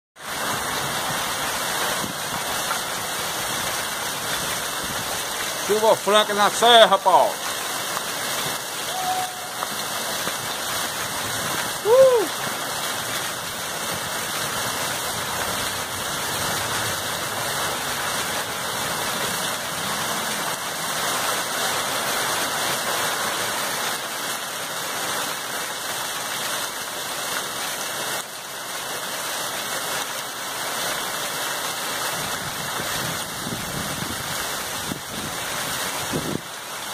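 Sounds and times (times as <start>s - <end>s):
heavy rain: 0.2s - 36.9s
water gushing off roof: 0.2s - 36.9s
loud call: 8.8s - 10.0s, 11.8s - 12.4s.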